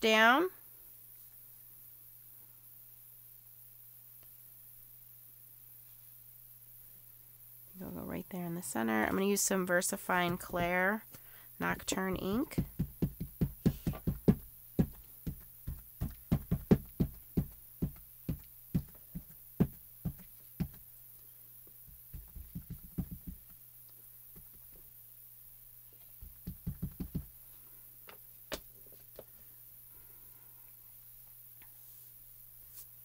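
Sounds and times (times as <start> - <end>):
rubber stamp knocking on ink pad: 12.2 - 20.8, 21.9 - 23.5, 26.2 - 27.3.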